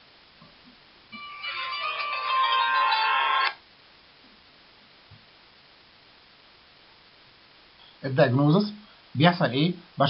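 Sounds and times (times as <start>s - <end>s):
mobile phone ringtone melody: 1.1s - 3.5s.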